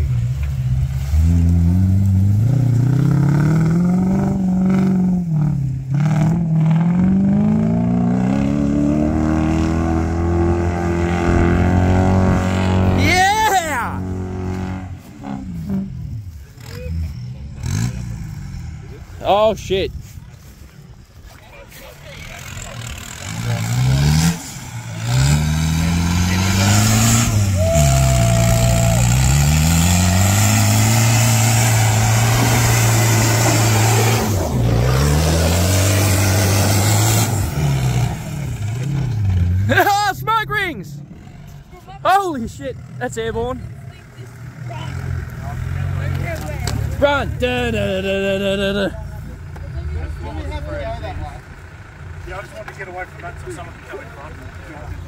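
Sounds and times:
car engine revving: 0:00.0 - 0:19.7, 0:22.1 - 0:55.0
people shouting: 0:27.4 - 0:29.5.

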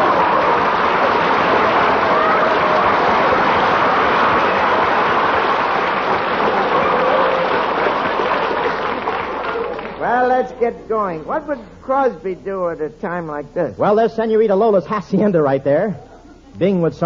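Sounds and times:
audience applauding: 0:00.0 - 0:10.5.

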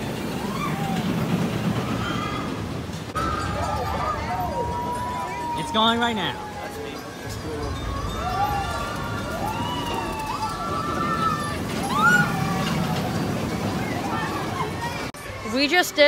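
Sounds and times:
roller coaster rumbling on track: 0:00.0 - 0:16.0
riders whooping and shouting: 0:00.3 - 0:15.1.

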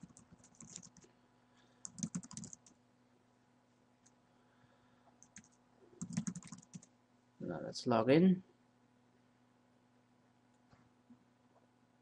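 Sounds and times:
typing on computer keyboard: 0:00.0 - 0:01.1, 0:01.8 - 0:02.8, 0:05.2 - 0:06.9.

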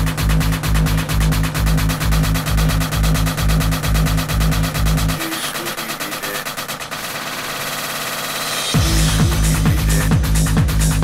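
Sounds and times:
techno music: 0:00.0 - 0:11.0.

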